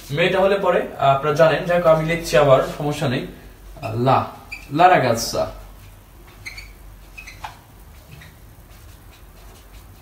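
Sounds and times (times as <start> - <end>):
marker squeaking on whiteboard: 3.8 - 4.8, 6.2 - 10.0.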